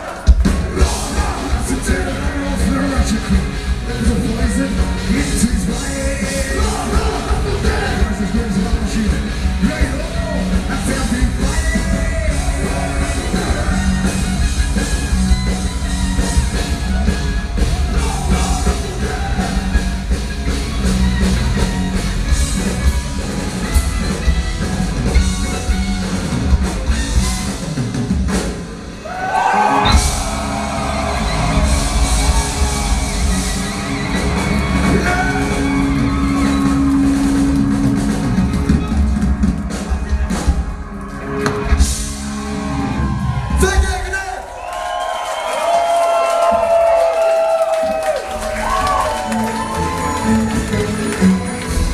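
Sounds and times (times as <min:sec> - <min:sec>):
live metal band playing: 0:00.0 - 0:44.2, 0:46.5 - 0:51.9.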